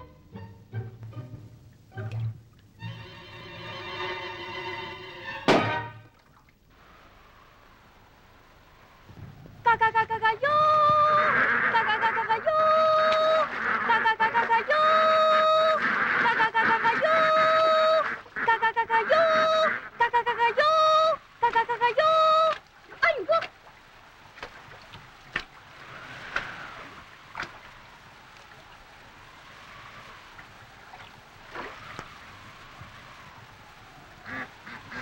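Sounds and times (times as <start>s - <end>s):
orchestral film music: 0.0s - 6.2s
reedy wind instrument: 0.0s - 35.0s
loud crash: 5.5s - 6.0s.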